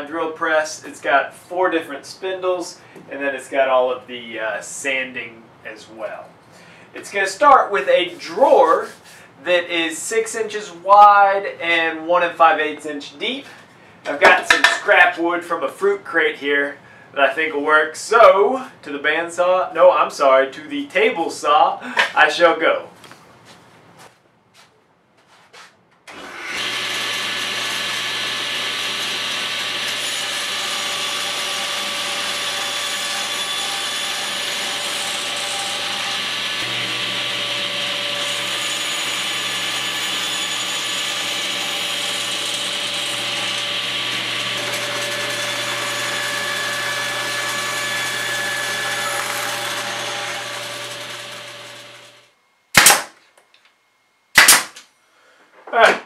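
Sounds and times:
table saw ripping wood: 0:26.1 - 0:52.2, 0:52.8 - 0:53.2, 0:54.4 - 0:54.8
sharp snaps: 0:52.8 - 0:53.5, 0:54.4 - 0:54.9.

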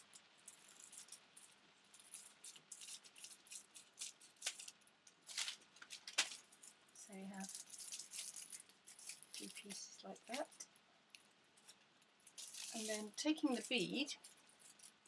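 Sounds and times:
tissue paper rustling: 0:00.0 - 0:10.6, 0:11.5 - 0:15.0.

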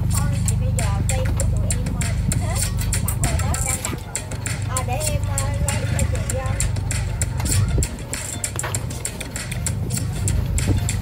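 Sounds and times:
faint voices: 0:00.0 - 0:10.1
low machine hum: 0:00.0 - 0:11.0
music: 0:00.0 - 0:11.0.

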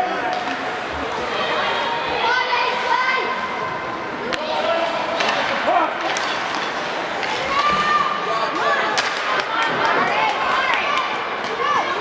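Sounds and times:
hockey stick cracks and clacks: 0:05.2 - 0:07.9, 0:08.5 - 0:11.6.

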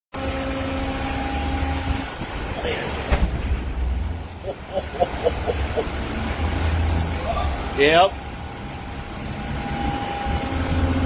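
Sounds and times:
steady droning hum: 0:03.8 - 0:07.0.

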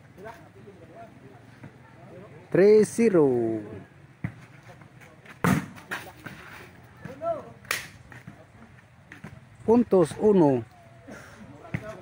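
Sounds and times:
hands slapping volleyball: 0:07.1 - 0:08.4.

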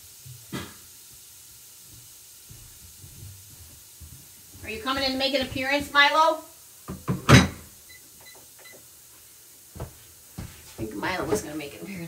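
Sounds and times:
thump on hard surface: 0:00.5 - 0:00.8, 0:06.9 - 0:07.6.

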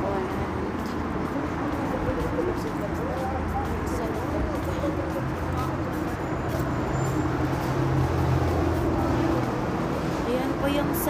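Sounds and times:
traffic noise: 0:00.0 - 0:11.0
vehicle engine hum: 0:00.0 - 0:11.0.

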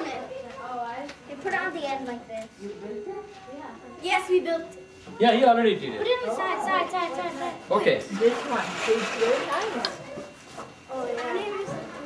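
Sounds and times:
indistinct voices talking: 0:06.0 - 0:12.0.

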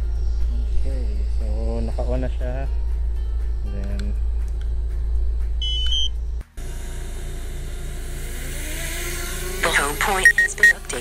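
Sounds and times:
low rumble with rising tone: 0:00.0 - 0:11.0
short high electronic beeps: 0:10.0 - 0:10.8.

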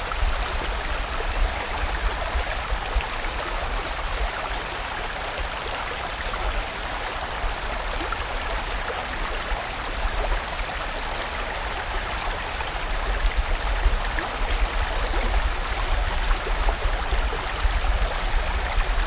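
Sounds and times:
stream rushing over rocks: 0:00.0 - 0:19.0.

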